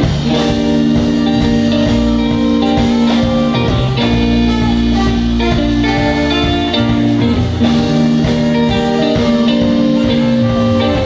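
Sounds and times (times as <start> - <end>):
electric guitar: 0.0 - 11.0
live band playing: 0.0 - 11.0.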